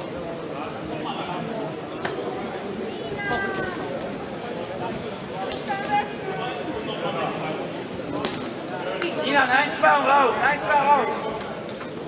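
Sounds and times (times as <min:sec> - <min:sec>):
background voices in a hall: 0:00.0 - 0:12.0.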